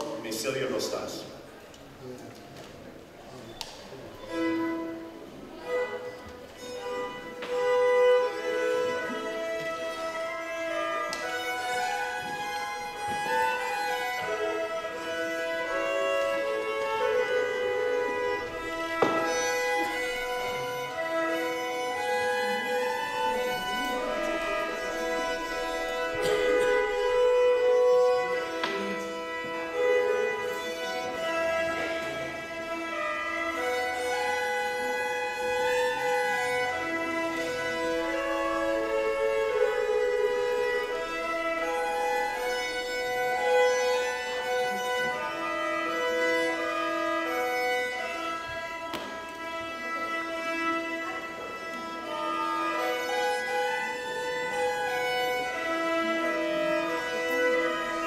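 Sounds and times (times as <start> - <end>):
fiddles playing a waltz: 0.0 - 58.0.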